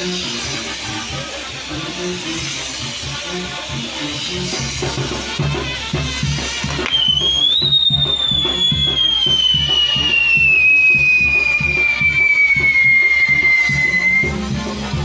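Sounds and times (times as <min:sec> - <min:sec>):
band music with steady beat: 0:00.0 - 0:15.0
whistling firework: 0:00.0 - 0:15.0.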